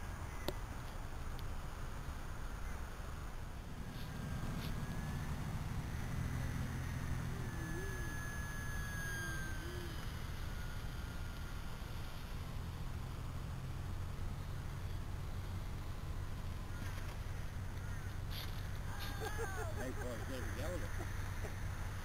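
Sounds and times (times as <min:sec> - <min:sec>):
distant model plane motor whine: 0:00.0 - 0:22.0.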